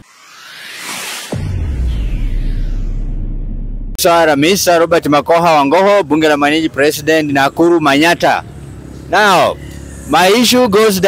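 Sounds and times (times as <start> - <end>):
man speaking: 4.0 - 8.5, 9.1 - 11.0
street traffic rumble: 4.1 - 11.0.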